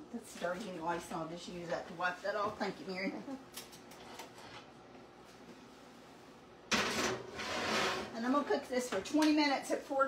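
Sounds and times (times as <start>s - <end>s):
metal scraping on metal: 6.7s - 8.3s.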